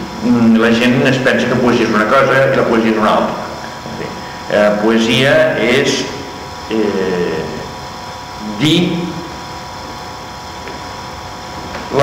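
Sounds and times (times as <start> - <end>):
electrical hum: 0.0 - 12.0
man speaking: 0.2 - 7.7, 8.4 - 9.4.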